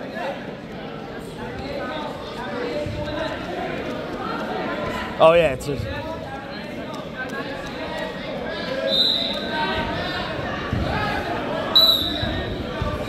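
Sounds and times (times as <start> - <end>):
voices echoing in a gym: 0.0 - 13.0
referee's whistle blasts: 8.9 - 9.5, 11.7 - 12.5.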